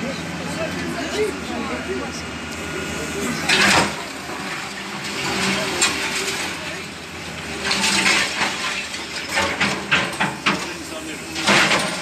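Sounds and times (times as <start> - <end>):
excavator engine and hydraulics: 0.0 - 12.0.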